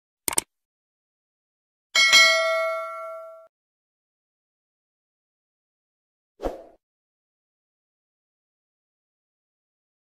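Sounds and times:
bell-like ding: 2.0 - 3.5.

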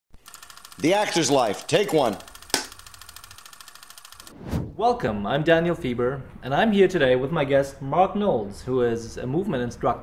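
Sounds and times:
clapperboard clack: 1.0 - 2.8.

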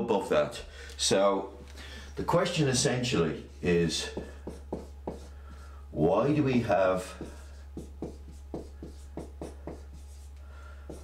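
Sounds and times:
marker pen writing: 4.1 - 5.6, 7.1 - 11.0.

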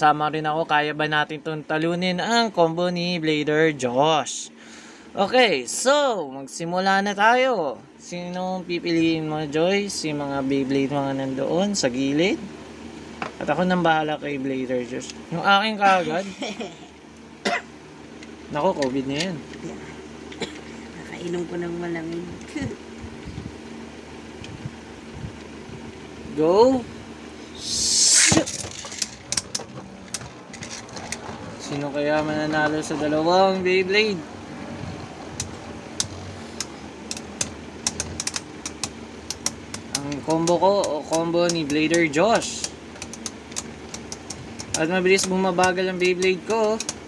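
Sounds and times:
man speaking: 13.4 - 16.4, 31.6 - 34.3
spinning tops whirring: 27.6 - 33.0
spinning top launcher rip: 27.8 - 30.1.

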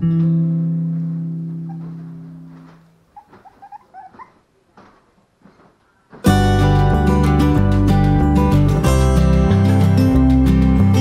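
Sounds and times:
puppy squeaking and whimpering: 1.6 - 2.0, 3.1 - 4.4
acoustic guitar chord: 6.3 - 11.0.

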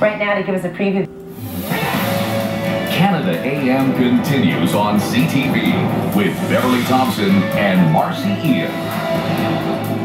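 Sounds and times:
television theme music: 0.0 - 10.0.

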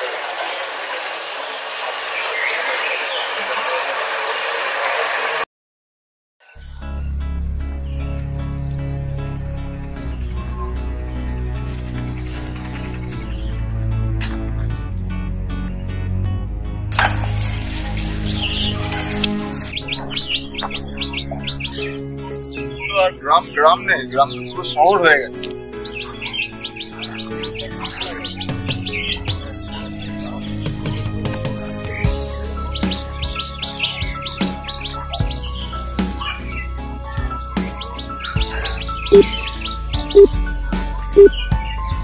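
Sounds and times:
background music: 6.5 - 42.0
faint distant calls: 32.8 - 40.4
small bird chirping: 32.8 - 40.4, 41.0 - 41.6.

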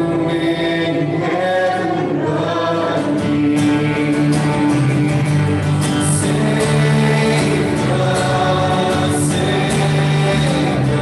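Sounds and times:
acoustic guitar: 0.0 - 11.0
group singing a worship song: 0.0 - 11.0.

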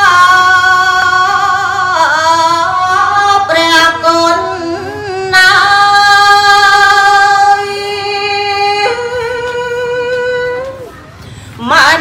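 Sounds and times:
woman singing chanted verse: 0.0 - 10.9, 11.5 - 12.0.

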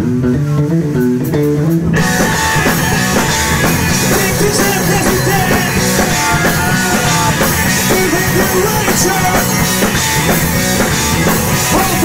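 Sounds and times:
guitar and bass riff: 0.0 - 12.0
live rock band playing: 0.0 - 12.0
drums and cymbals: 1.0 - 12.0.

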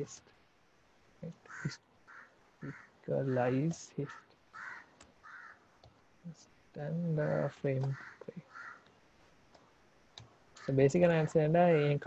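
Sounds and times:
faint background cawing: 0.0 - 12.0
bird harsh calls: 1.4 - 3.4, 4.0 - 5.8, 7.3 - 8.9.

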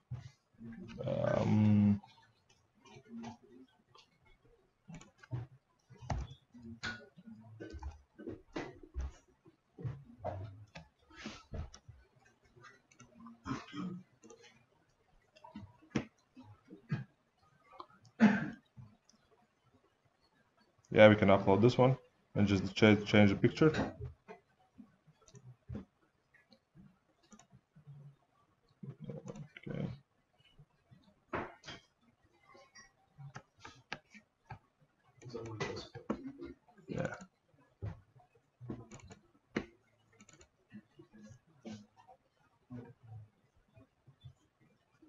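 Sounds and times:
computer mouse clicks: 27.2 - 27.5, 38.7 - 40.6.

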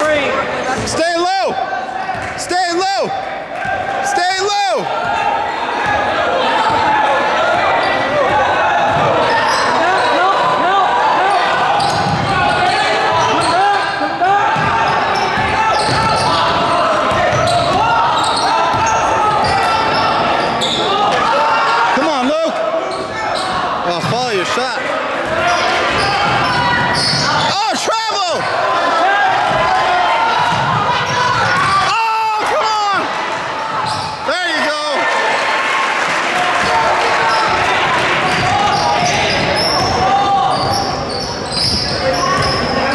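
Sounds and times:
din of many voices: 0.0 - 42.9.

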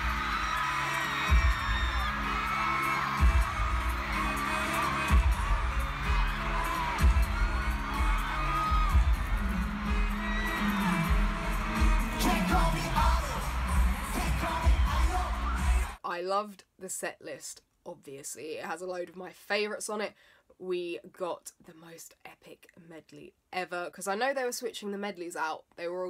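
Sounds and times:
heavy pulsing bass beat: 0.0 - 16.0
person singing: 0.0 - 16.0.

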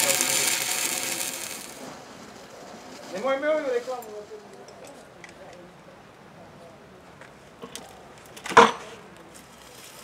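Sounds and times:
welding arc crackling hiss: 0.0 - 4.2.

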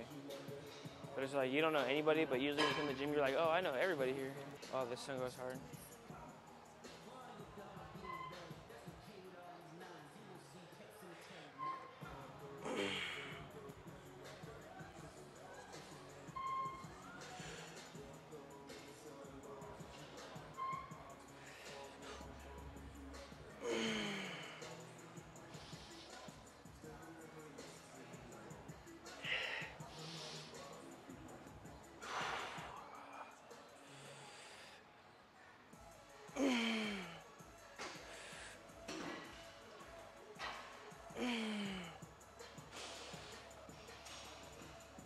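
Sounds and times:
background music: 0.0 - 45.0.

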